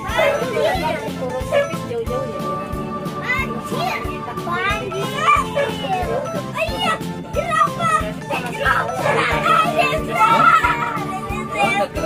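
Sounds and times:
children chattering and calling out: 0.0 - 12.0
music with a steady beat: 0.0 - 12.0.

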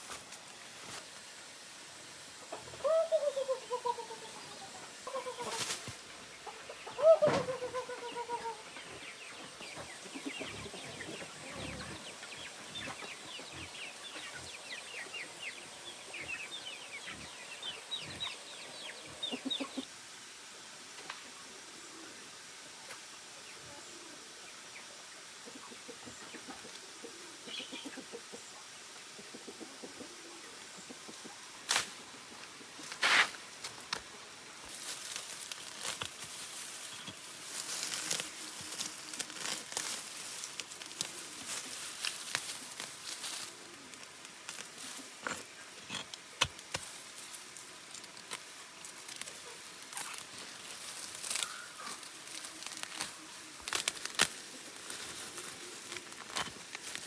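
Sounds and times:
weeds rustling and tearing: 0.0 - 1.3, 5.0 - 6.1, 31.6 - 32.0, 32.8 - 57.0
stems snapping: 34.8 - 57.0.

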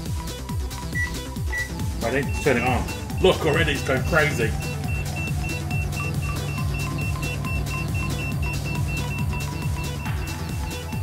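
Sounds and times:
electronic music with steady beat: 0.0 - 11.0
high-pitched alarm beeps: 1.0 - 11.0.

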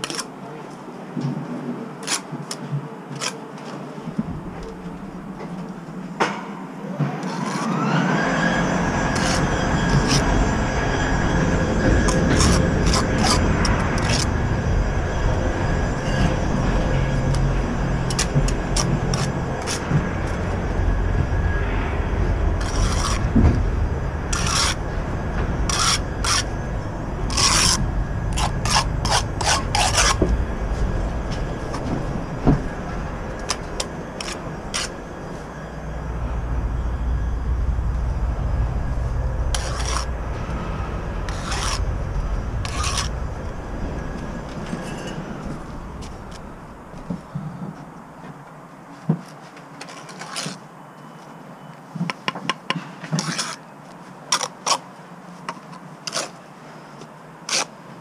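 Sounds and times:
trowel scraping mortar: 0.0 - 0.3, 2.0 - 3.7, 7.2 - 7.8, 9.0 - 10.4, 11.8 - 14.4, 17.2 - 20.4, 22.6 - 23.3, 24.3 - 24.8, 25.7 - 26.5, 27.3 - 30.3, 33.4 - 35.5, 39.5 - 40.1, 41.3 - 41.9, 42.6 - 43.1, 49.8 - 50.6, 53.2 - 53.6, 54.3 - 54.8, 55.5 - 56.4, 57.5 - 57.7
steady low rumble: 4.0 - 6.2, 7.8 - 48.3.

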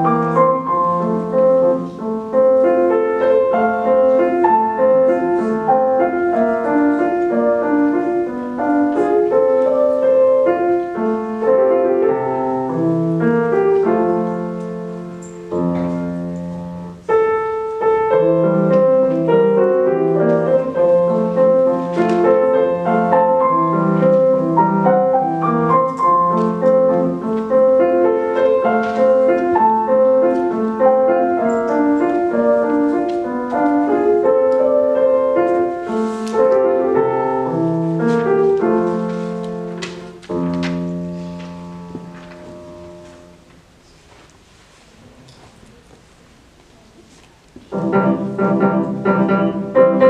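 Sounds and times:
solo grand piano: 0.0 - 50.0.

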